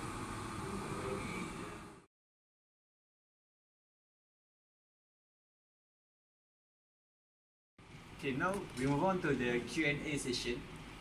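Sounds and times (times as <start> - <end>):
faint room hum: 0.0 - 2.1, 7.8 - 11.0.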